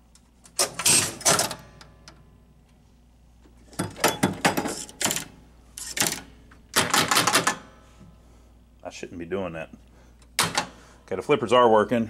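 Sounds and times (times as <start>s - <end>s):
pinball relay and switch clicking: 0.5s - 2.2s, 3.8s - 7.7s.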